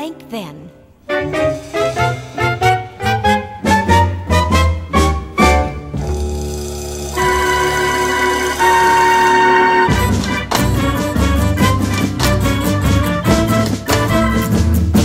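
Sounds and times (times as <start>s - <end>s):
orchestra playing swing music: 1.0s - 15.0s.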